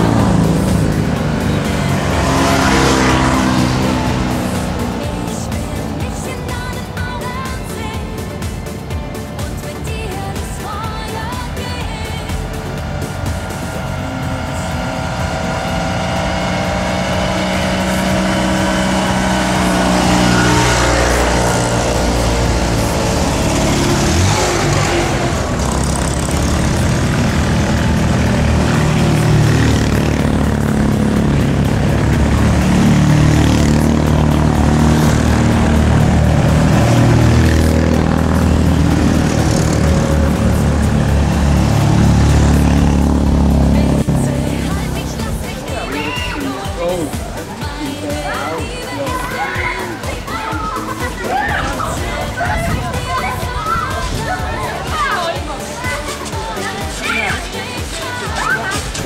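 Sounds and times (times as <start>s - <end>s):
music: 0.0s - 59.0s
small cars driving past: 0.0s - 59.0s.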